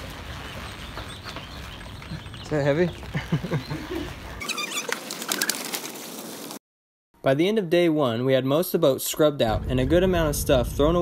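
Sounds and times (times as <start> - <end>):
birds calling: 0.0 - 5.7.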